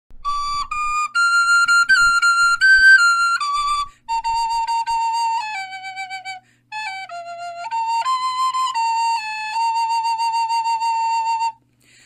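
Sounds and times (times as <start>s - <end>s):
wooden recorder melody: 0.1s - 11.6s.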